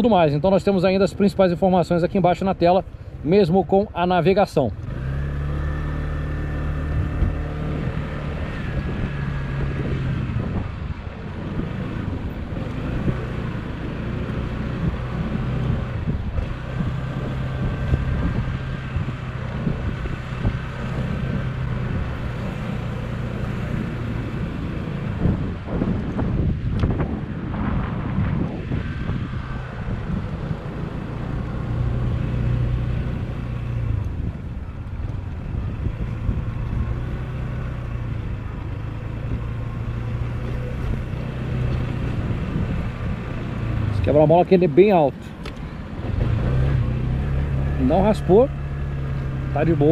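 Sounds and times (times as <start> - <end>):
wind on microphone: 6.8 - 13.5, 14.7 - 23.0, 23.7 - 38.5, 40.4 - 44.2.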